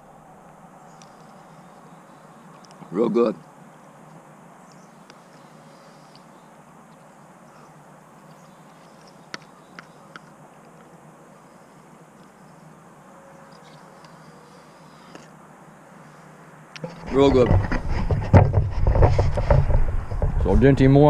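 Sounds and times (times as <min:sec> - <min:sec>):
insect buzzing softly: 0:03.4 - 0:17.1.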